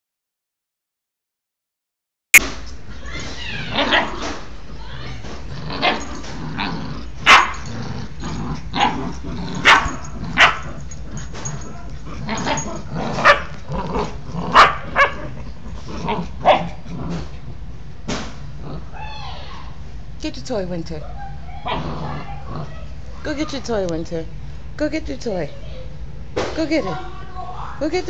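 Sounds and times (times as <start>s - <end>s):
puppies yipping and barking: 3.0s - 4.4s, 9.6s - 13.6s.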